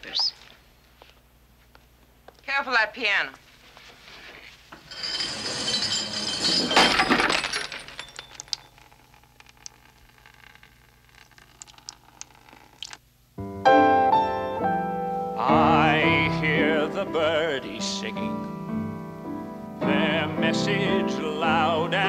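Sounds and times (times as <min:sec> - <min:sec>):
glass breaking: 0:04.8 - 0:08.9
glass pieces clinking: 0:04.8 - 0:09.0
upright piano playing: 0:13.4 - 0:22.0.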